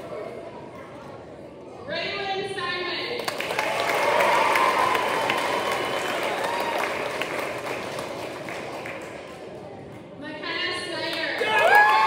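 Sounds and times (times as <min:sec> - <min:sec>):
audience applauding: 0:03.2 - 0:09.5, 0:11.4 - 0:12.0.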